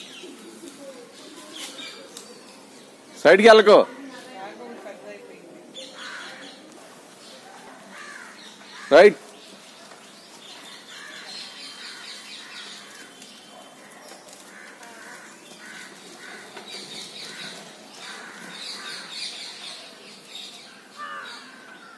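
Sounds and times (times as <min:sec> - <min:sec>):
harsh bird calls: 0:05.7 - 0:21.9.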